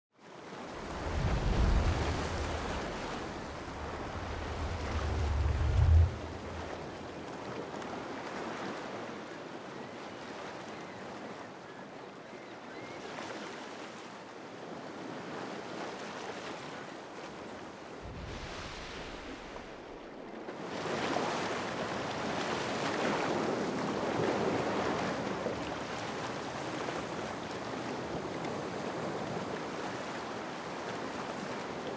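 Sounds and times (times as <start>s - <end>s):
ocean water washing: 0.4s - 9.1s, 16.6s - 31.9s
ocean water rushing: 0.6s - 7.6s, 17.7s - 21.2s
deep low rumble: 0.8s - 6.8s.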